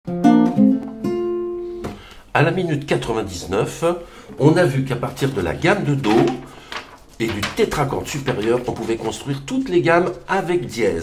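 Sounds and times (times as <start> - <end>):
classical guitar plucked chords: 0.1 - 2.0.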